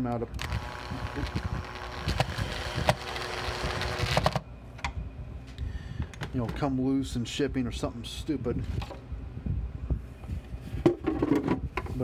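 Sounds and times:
cordless drill driving screw: 0:00.4 - 0:04.4.

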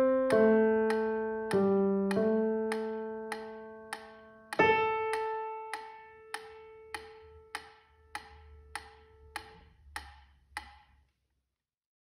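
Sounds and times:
piano chord ringing: 0:00.0 - 0:09.4
metronome ticking: 0:00.2 - 0:10.9.

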